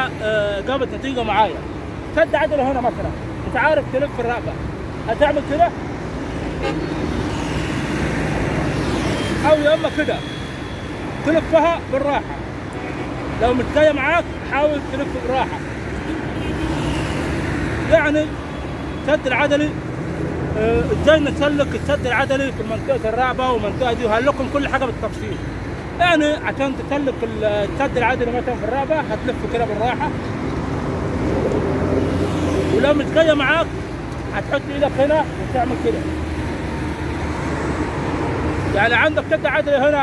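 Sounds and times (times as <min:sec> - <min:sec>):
road traffic passing: 0:00.0 - 0:40.0.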